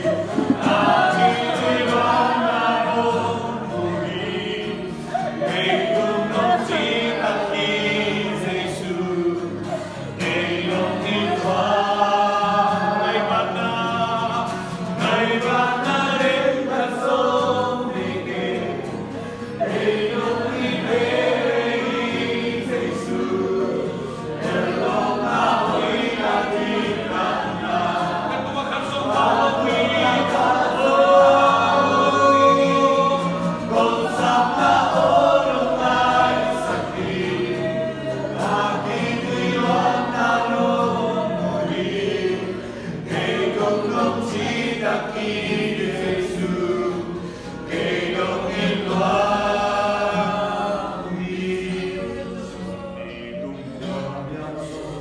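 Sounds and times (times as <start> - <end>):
group singing a worship song: 0.0 - 55.0.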